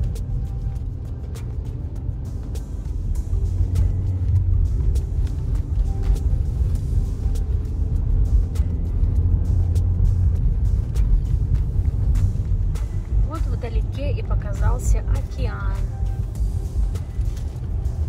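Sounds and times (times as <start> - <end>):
car engine and tyres rumble: 0.0 - 18.0
faint music: 0.0 - 18.0.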